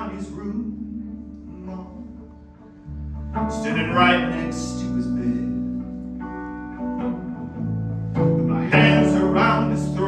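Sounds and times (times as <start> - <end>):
amplified electric guitar chords: 0.0 - 10.0.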